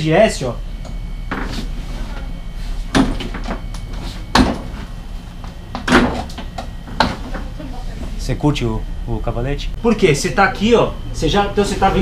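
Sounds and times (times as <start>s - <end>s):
knocks and thumps on motorcycle: 4.3s - 4.8s.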